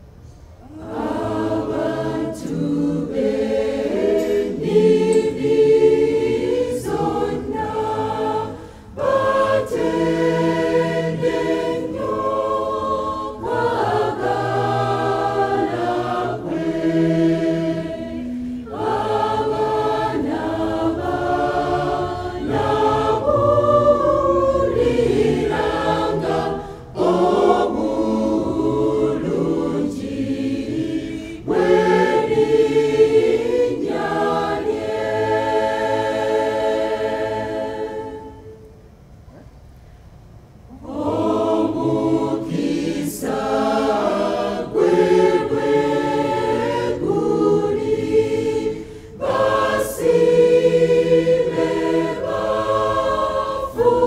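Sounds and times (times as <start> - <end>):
choir singing gospel in harmony: 0.6 - 38.7, 40.7 - 54.0.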